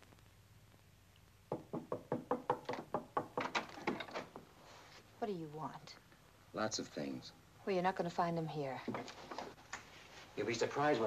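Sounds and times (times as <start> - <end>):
rapid knocking on door: 1.5 - 4.5.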